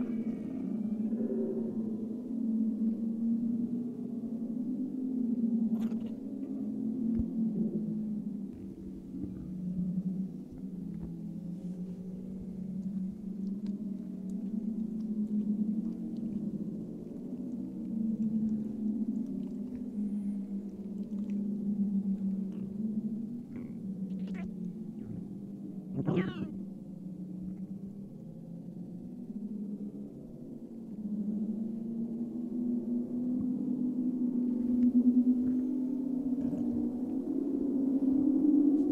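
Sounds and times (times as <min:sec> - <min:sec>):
low wavering drone: 0:00.0 - 0:38.9
faint clicks: 0:10.5 - 0:22.8.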